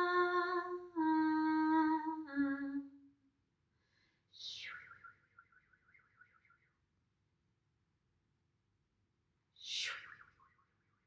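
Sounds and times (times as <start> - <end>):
faint wavering whistle: 4.3 - 6.9.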